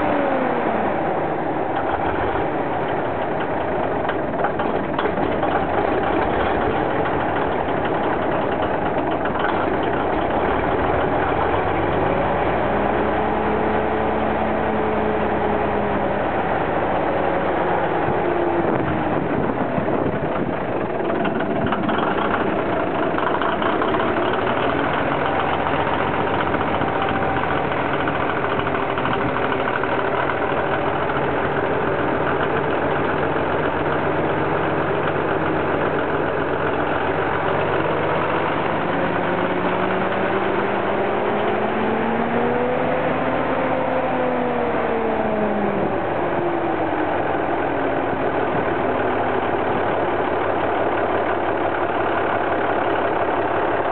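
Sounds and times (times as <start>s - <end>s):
diesel lorry engine idling: 0.0s - 53.9s.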